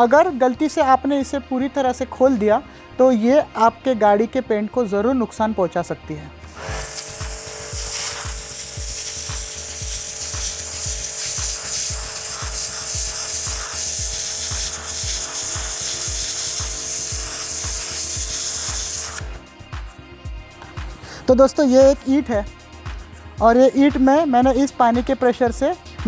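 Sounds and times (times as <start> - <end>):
background music with beat: 6.3 - 26.0
water jet hissing on brick: 6.5 - 19.4
pressure washer hum: 6.5 - 19.9.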